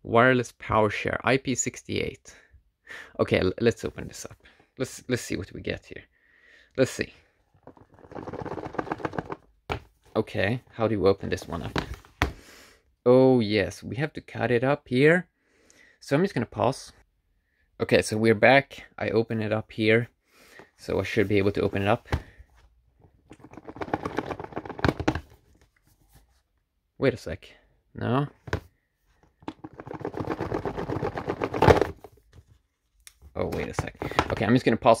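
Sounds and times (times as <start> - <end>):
fingers scratching at a box: 7.7 - 9.4.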